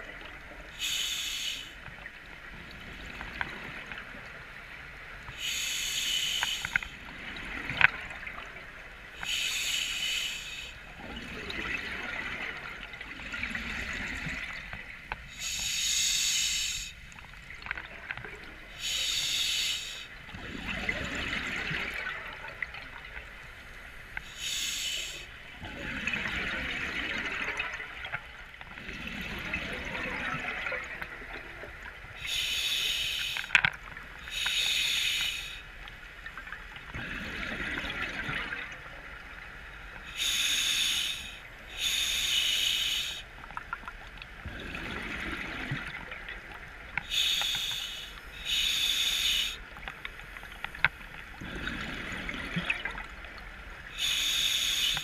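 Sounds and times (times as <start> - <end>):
hissing regulator inhalations: 0.8 - 1.8, 5.4 - 6.9, 9.2 - 10.8, 15.3 - 17.1, 18.8 - 20.1, 23.6 - 25.3, 32.2 - 33.6, 34.2 - 35.7, 40.1 - 43.3, 47.0 - 50.8, 53.9 - 55.0
exhaled bubbles rumbling: 10.9 - 15.0, 20.3 - 23.4, 25.5 - 32.2, 36.5 - 39.5, 44.4 - 47.0, 51.3 - 53.9.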